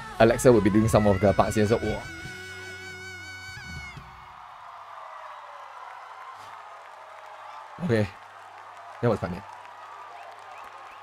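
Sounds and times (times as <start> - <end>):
audience cheering and applauding: 2.6 - 11.0.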